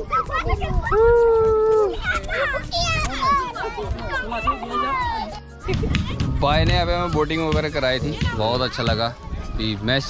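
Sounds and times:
young children calling and chattering: 0:00.0 - 0:10.0.

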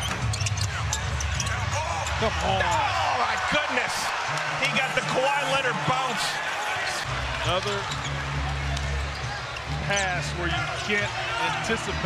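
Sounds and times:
murmur of arena crowd: 0:00.0 - 0:12.0.

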